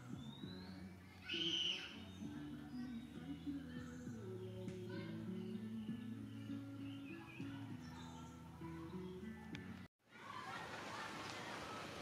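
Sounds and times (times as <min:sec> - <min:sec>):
background music: 0:00.0 - 0:09.9.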